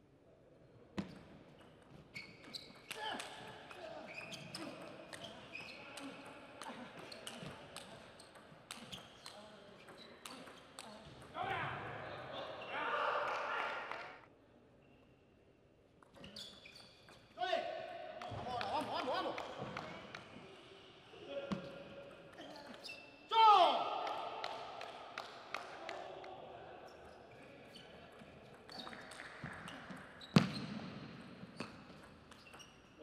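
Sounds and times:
player shouting: 0:23.3 - 0:24.4.

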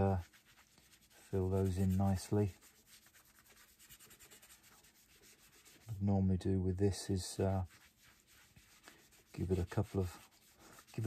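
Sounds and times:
pad rubbing wax on wood: 0:00.0 - 0:06.0, 0:07.0 - 0:11.0.

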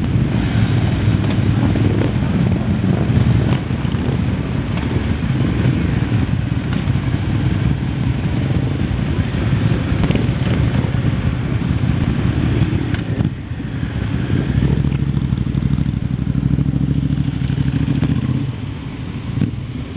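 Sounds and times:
motorcycles idling: 0:00.0 - 0:19.9
motorcycles riding past: 0:00.0 - 0:19.9.

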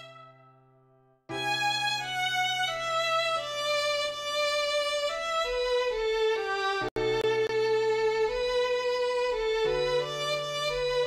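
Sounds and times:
violin melody: 0:00.0 - 0:00.6, 0:01.3 - 0:11.0.

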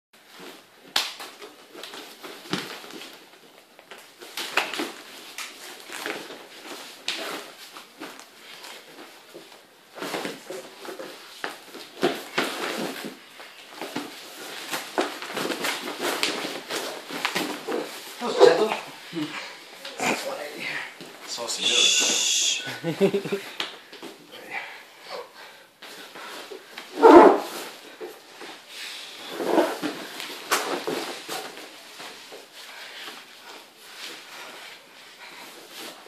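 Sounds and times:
bodies thumping on foam mats: 0:09.0 - 0:18.9, 0:25.8 - 0:28.6.

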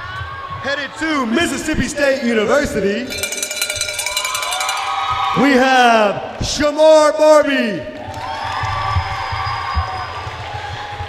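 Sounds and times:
cowbell rung rapidly: 0:03.1 - 0:05.4.

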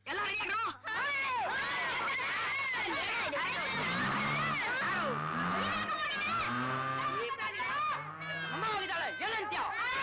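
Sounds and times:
children shouting and squealing: 0:00.9 - 0:10.0.

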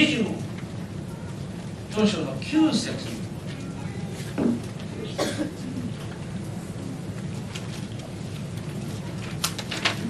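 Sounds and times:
man clearing his throat: 0:05.1 - 0:05.7.

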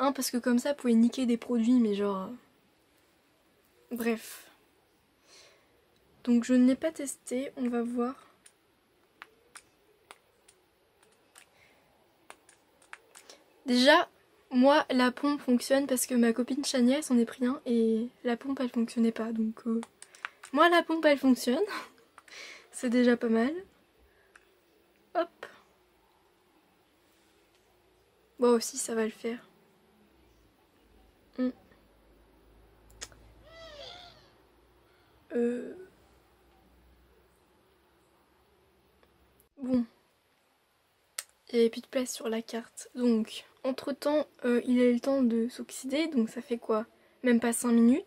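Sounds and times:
short meow-like call: 0:33.4 - 0:34.3.

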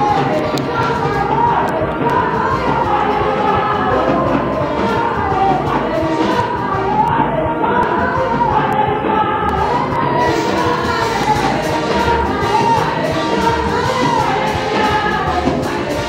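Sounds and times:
loud amplified worship music: 0:00.0 - 0:16.0
voices singing together: 0:00.0 - 0:16.0.

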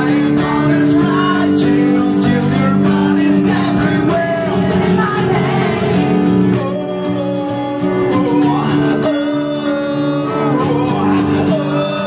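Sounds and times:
acoustic guitar strumming chords: 0:00.0 - 0:12.0
person singing: 0:00.0 - 0:12.0.

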